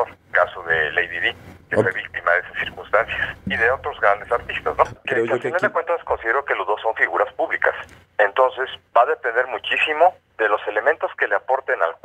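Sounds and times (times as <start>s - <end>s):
faint low hum: 0.0s - 12.0s
man's voice over phone: 0.0s - 12.0s.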